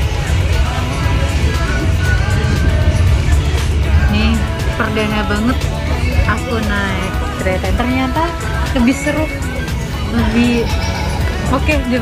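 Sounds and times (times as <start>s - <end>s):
background music: 0.0s - 12.0s
train carriage rumble: 0.0s - 12.0s.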